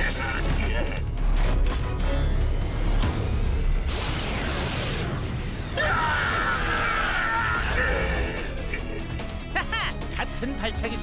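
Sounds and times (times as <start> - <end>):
action background music: 0.0 - 11.0
energy beam blast: 2.6 - 5.8.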